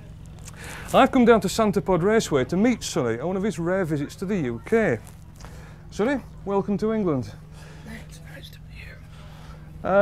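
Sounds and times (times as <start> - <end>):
faint indistinct voices: 0.0 - 10.0.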